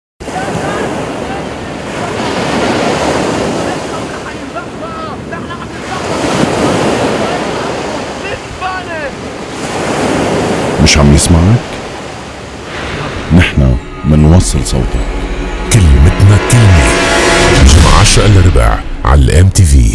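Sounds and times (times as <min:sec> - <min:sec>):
ocean surf breaking: 0:00.2 - 0:19.8.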